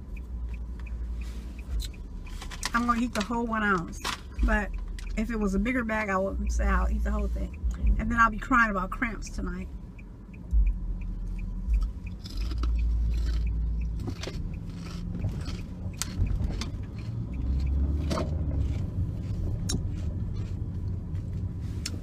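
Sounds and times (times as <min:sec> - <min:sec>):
car cabin rumble: 0:00.0 - 0:22.0
chips being chewed: 0:12.2 - 0:20.6.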